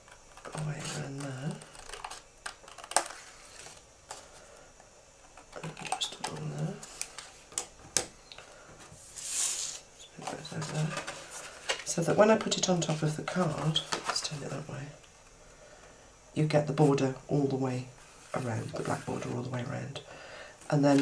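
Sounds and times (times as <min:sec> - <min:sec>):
paper rustling: 0:00.0 - 0:04.4, 0:08.9 - 0:14.6, 0:20.8 - 0:21.0.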